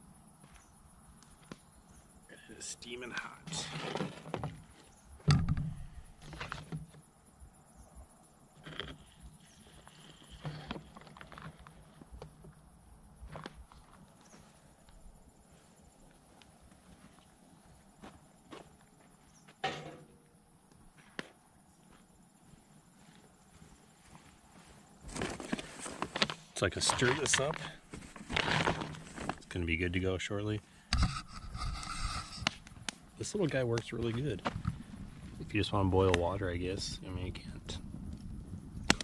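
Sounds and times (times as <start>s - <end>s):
campfire burning with pops: 30.9s - 36.3s, 37.7s - 39.0s.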